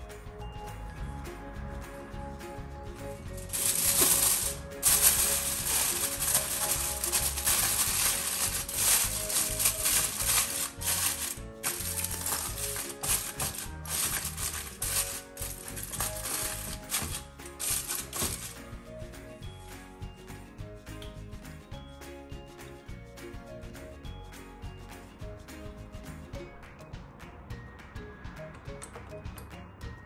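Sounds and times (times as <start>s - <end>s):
background music: 0.0s - 30.0s
aluminium foil crinkling: 3.4s - 18.6s.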